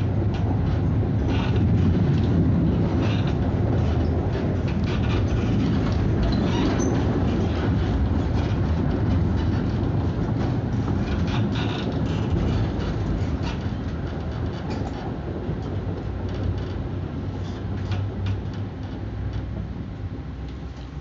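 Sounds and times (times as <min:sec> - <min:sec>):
tram wheels rumbling on rails: 0:00.0 - 0:21.0.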